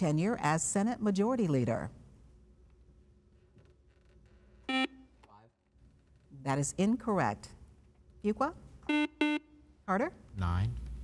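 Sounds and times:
quiz buzzer beep: 4.7s - 5.0s, 8.9s - 9.6s.

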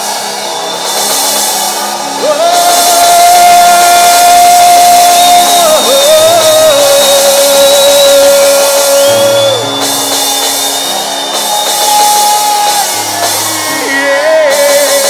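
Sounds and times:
church worship music: 0.0s - 15.0s.

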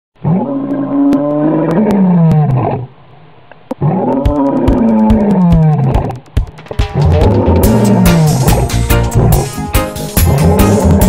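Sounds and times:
lion roaring: 0.2s - 2.9s, 3.8s - 6.0s, 7.0s - 9.4s, 10.2s - 11.0s.

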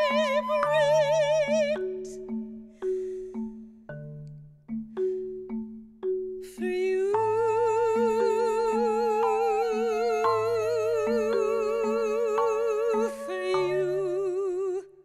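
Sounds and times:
woman singing long vibrato note: 0.0s - 2.4s, 6.4s - 15.0s
mallet keyboard notes: 0.0s - 14.7s.

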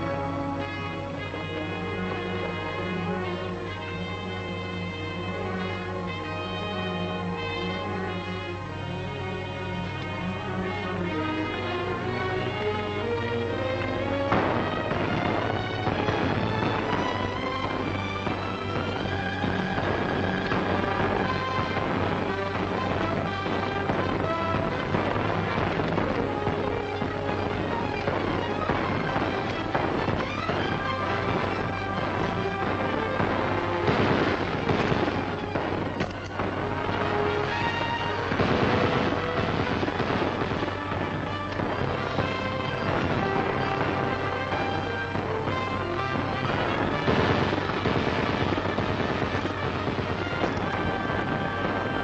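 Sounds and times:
dramatic film score: 0.0s - 52.0s
loud blasts: 0.0s - 52.0s.

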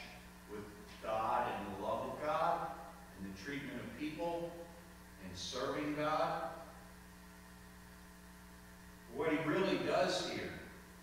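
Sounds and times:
electrical mains hum: 0.0s - 11.0s
man speaking: 0.5s - 6.7s, 9.1s - 10.7s.

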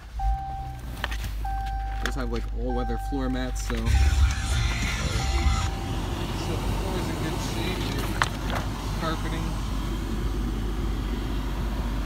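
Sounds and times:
car engine starting and idling: 0.0s - 12.0s
electronic dashboard chime: 0.1s - 7.4s.

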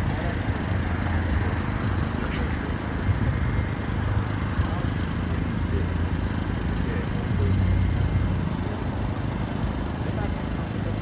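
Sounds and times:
men talking indistinctly: 4.6s - 8.1s.

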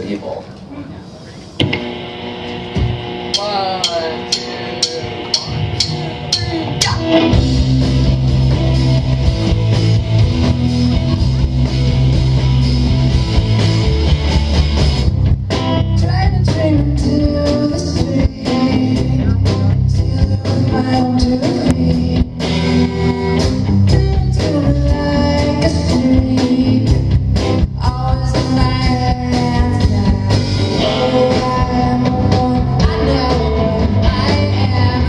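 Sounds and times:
guitar figure: 1.6s - 16.0s
rock band playing: 1.6s - 35.0s.

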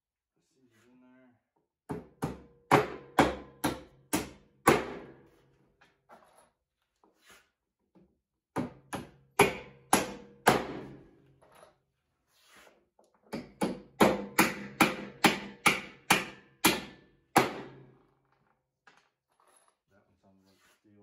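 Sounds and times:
hammer striking bolts: 8.5s - 11.0s, 13.3s - 17.9s.

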